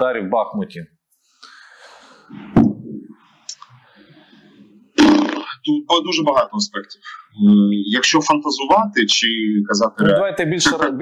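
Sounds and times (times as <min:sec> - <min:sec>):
low background hiss: 0:03.4 - 0:11.0.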